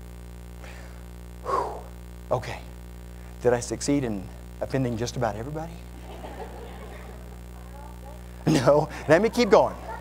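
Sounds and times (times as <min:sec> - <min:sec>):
low steady hum: 0:00.0 - 0:10.0
person laughing: 0:06.0 - 0:07.5, 0:08.4 - 0:10.0.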